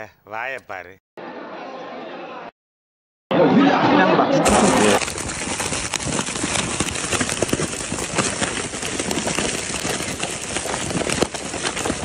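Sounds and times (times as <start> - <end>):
plastic wrappers crinkling: 4.4 - 12.0.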